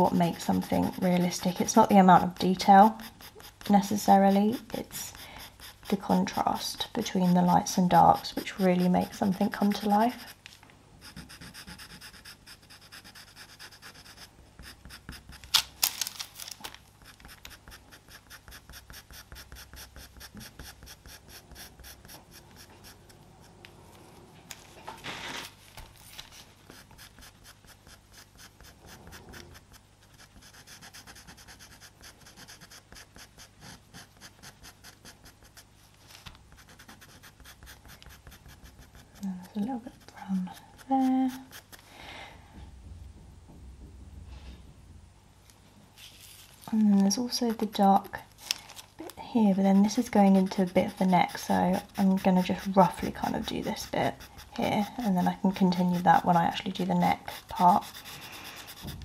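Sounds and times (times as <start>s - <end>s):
pencil scratching on sanded paper: 0.0s - 10.4s, 11.0s - 15.5s, 17.0s - 23.6s, 26.7s - 35.9s, 36.5s - 41.8s, 49.3s - 59.0s.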